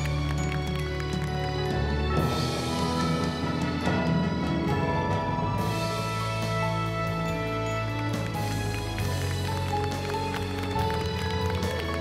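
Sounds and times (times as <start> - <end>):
hand-clapping: 0.0 - 2.2, 7.9 - 12.0
music with sustained notes: 0.0 - 12.0.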